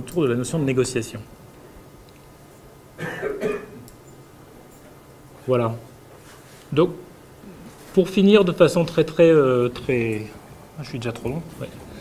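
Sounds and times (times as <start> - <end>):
man clearing throat cough: 3.0 - 3.8.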